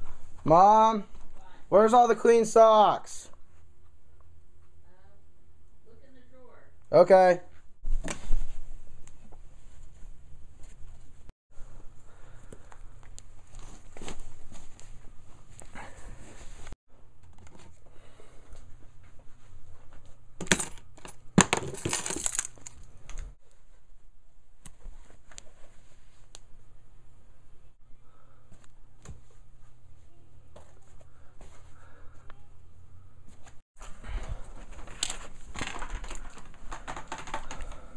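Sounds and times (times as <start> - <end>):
handling noise: 19.9 - 23.4
caps knocking and rustling: 20.4 - 22.8, 34.8 - 37.9
steady low hum: 25.7 - 35.5.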